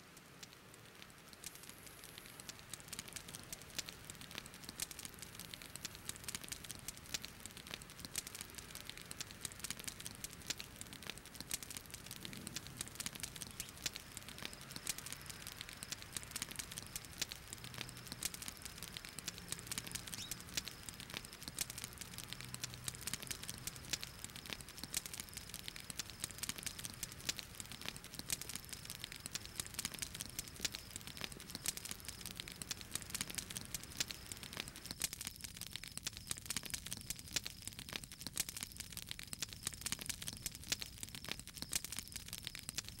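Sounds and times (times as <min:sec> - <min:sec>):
wood fire crackling: 0:00.0 - 0:43.0.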